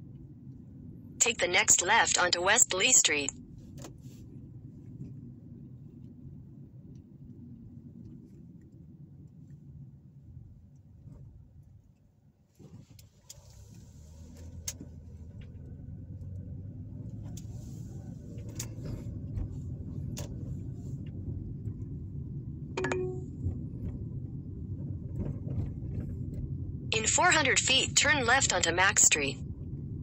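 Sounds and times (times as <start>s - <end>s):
car engine and tyre rumble: 0.0s - 1.2s, 3.3s - 27.4s, 29.4s - 30.0s.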